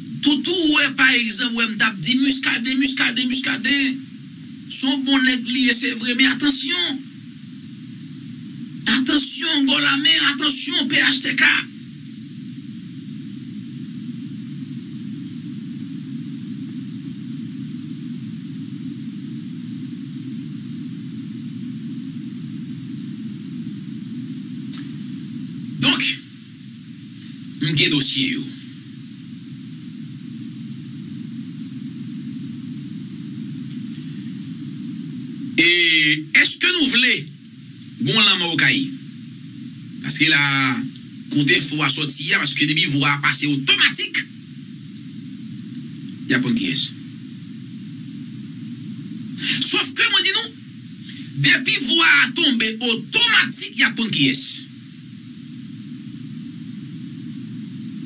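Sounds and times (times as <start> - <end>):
faint hiss: 0.0 - 58.0
man speaking: 0.2 - 4.0, 4.7 - 7.0, 8.9 - 11.7, 25.8 - 26.3, 27.6 - 28.7, 35.6 - 37.3, 38.0 - 39.0, 40.0 - 44.3, 46.3 - 47.0, 49.4 - 50.6, 51.3 - 54.7.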